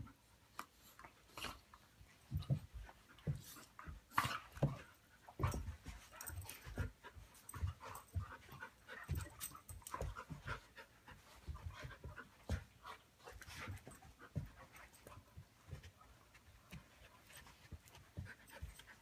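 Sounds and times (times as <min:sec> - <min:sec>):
dogs panting: 0:00.0 - 0:19.0
dogs scuffling and thudding: 0:00.5 - 0:19.0.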